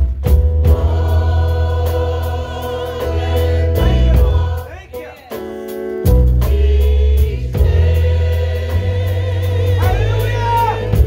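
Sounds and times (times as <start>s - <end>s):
deep bass line: 0.0s - 4.7s, 6.1s - 11.0s
keyboard chords: 0.0s - 11.0s
gospel choir singing: 0.3s - 11.0s.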